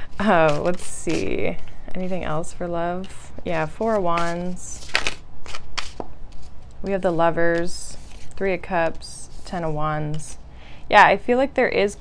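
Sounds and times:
cards being shuffled: 0:00.0 - 0:06.9, 0:07.5 - 0:08.5.

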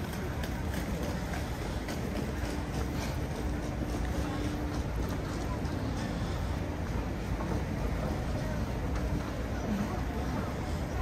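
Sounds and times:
footsteps on tiled floor: 0:00.0 - 0:06.3.

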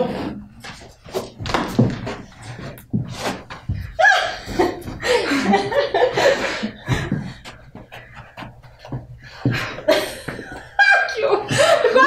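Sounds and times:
women panting: 0:02.3 - 0:12.0.

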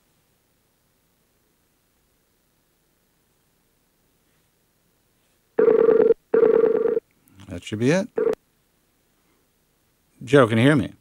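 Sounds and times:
electronic ring tone: 0:05.6 - 0:07.0.

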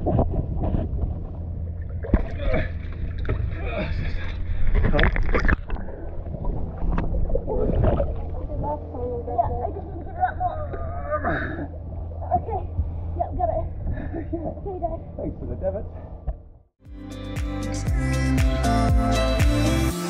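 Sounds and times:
water splashing: 0:00.0 - 0:13.0
steady low hum: 0:00.0 - 0:16.6.

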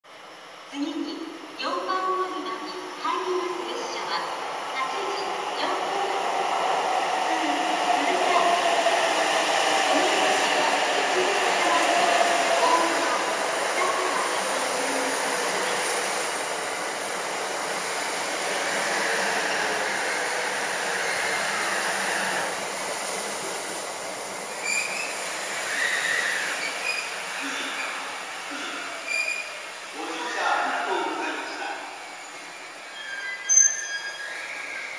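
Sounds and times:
rush of passing train cars: 0:03.4 - 0:34.9.

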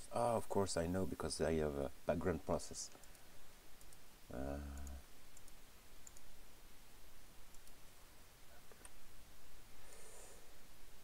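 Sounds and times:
computer mouse clicks: 0:02.9 - 0:04.0, 0:04.7 - 0:06.3, 0:07.5 - 0:07.8
man saying uh: 0:04.3 - 0:05.0.

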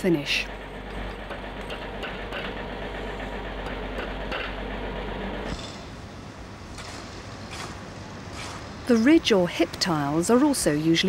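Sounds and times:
building site hum and rumble: 0:00.0 - 0:11.0.

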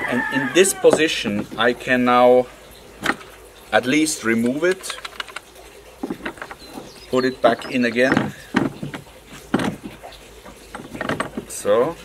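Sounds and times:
rod holder clicks and knocks: 0:03.0 - 0:03.3, 0:04.4 - 0:06.9, 0:07.5 - 0:10.1, 0:10.7 - 0:11.6.

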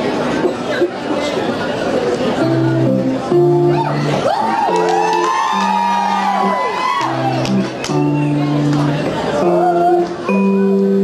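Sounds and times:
electric guitar notes: 0:02.4 - 0:11.0
audience whooping and whistling: 0:04.2 - 0:08.6.

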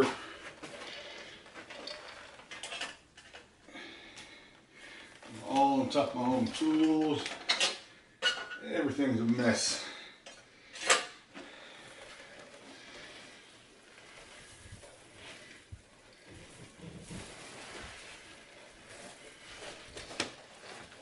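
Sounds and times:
carpet dragged over floor: 0:11.8 - 0:21.0.

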